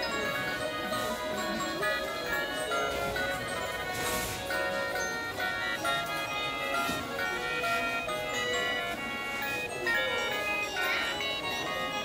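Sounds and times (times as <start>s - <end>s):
electronic toy melody: 0.0s - 12.0s.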